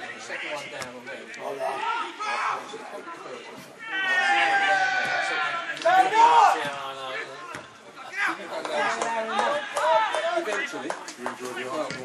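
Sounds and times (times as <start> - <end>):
chatter of voices: 0.0 - 12.0
people shouting calls: 3.8 - 10.7.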